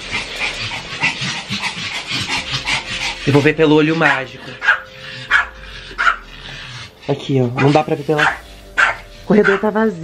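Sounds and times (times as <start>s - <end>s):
small dog panting: 0.0s - 9.7s.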